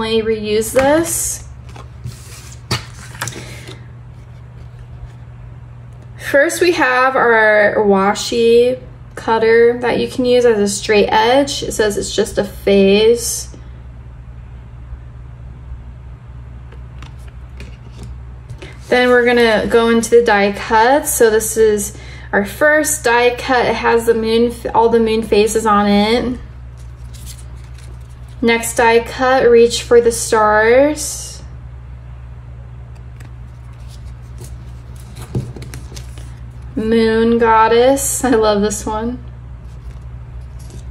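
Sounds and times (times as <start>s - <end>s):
steady low hum: 0.0s - 40.9s
paper rustling: 0.8s - 5.2s, 17.0s - 19.8s, 26.7s - 28.4s, 33.1s - 36.7s, 39.6s - 40.9s
paper cutouts tapping and rustling: 17.0s - 19.7s, 33.2s - 36.4s.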